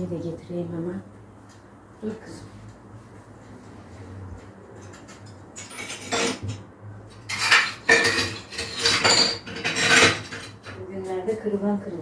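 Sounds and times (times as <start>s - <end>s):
hard household objects clattering: 4.8s - 10.8s.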